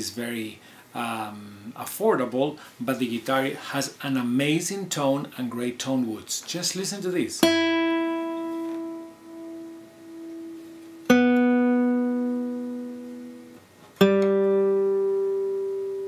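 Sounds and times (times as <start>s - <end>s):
nylon-string guitar chords ringing: 7.4s - 16.0s.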